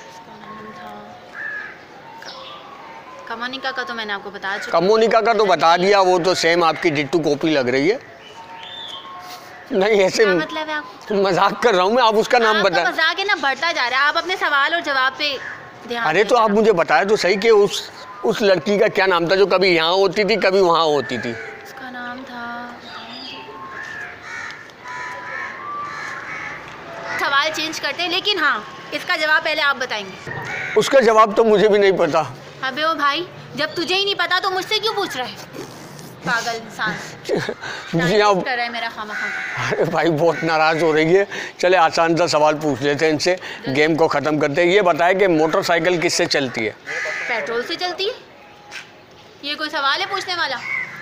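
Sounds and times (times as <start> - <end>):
bird calling: 0.0 - 31.7, 32.7 - 41.5, 45.2 - 51.0.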